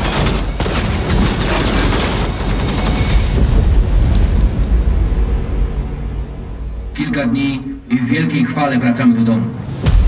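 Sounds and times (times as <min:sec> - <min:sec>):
music: 0:02.1 - 0:10.0.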